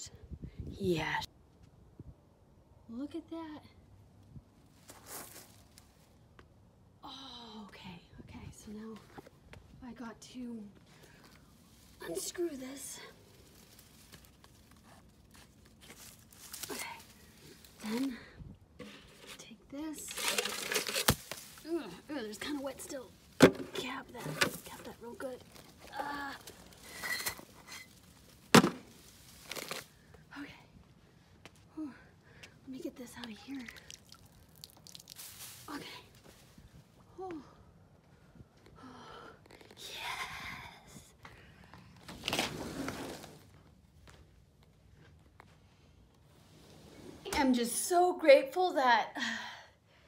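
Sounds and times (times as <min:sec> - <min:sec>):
shrub leaves rustling: 0:11.1 - 0:18.2, 0:20.0 - 0:30.0, 0:34.6 - 0:36.5
footstep on wood-chip mulch: 0:34.8 - 0:36.4.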